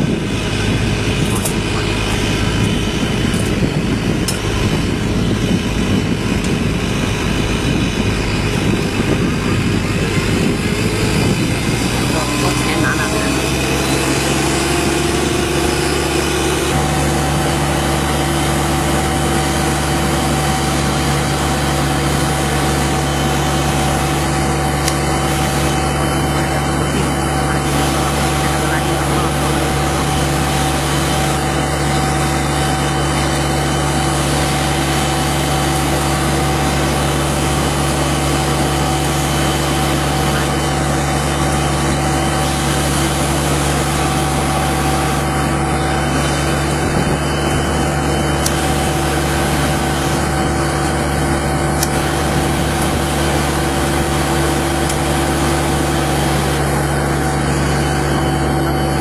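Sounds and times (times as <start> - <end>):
street sweeper engine drone: 0.0 - 59.0.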